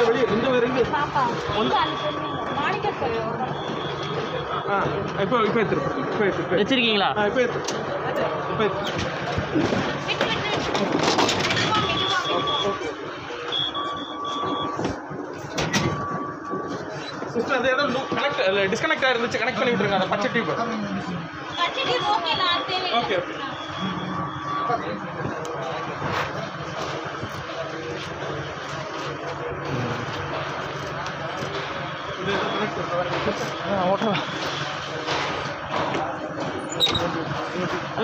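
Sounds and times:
indistinct voices: 0.0s - 38.0s
short high electronic beeps: 11.6s - 18.4s, 21.4s - 25.2s
steady low electronic tone: 11.9s - 31.3s.

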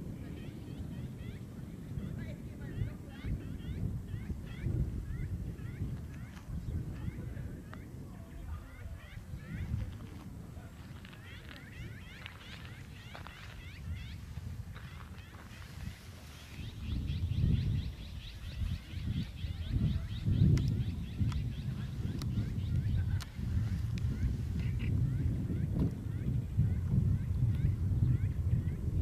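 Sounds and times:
wind rumbling on microphone: 0.0s - 29.0s
small birds chirping: 0.2s - 28.8s.

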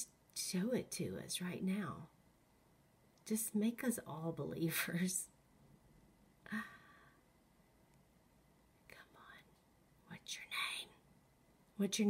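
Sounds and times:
breathy whispered voice: 8.9s - 11.0s.

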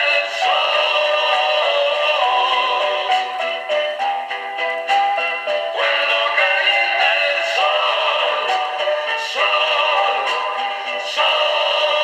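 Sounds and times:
pop song through small speaker: 0.0s - 12.0s.

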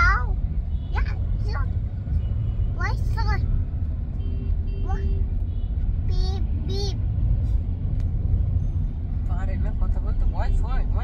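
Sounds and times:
car rumble from inside cabin: 0.0s - 11.0s.

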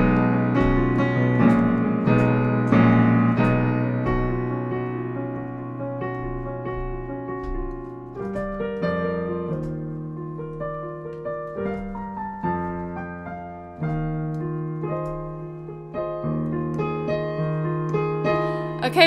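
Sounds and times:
digital piano playing slow chords: 0.0s - 19.0s.

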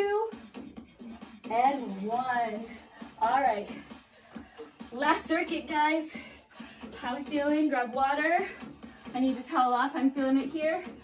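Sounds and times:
pop music with singing: 0.0s - 11.0s.

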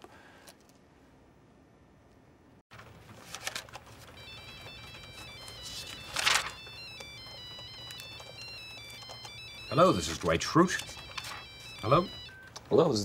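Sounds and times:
clicks: 3.5s - 9.7s
cell phone ringtone beeping melody: 4.1s - 13.0s.

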